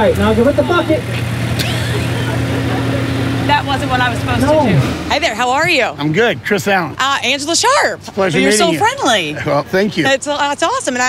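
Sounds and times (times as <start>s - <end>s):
tractor engine running: 0.0s - 8.1s
higher steady hum: 0.0s - 11.0s.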